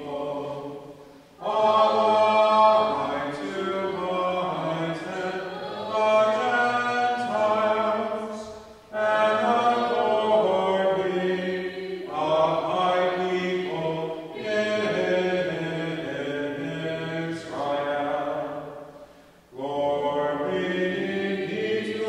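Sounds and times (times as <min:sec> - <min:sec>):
voices singing a hymn: 0:00.0 - 0:22.0.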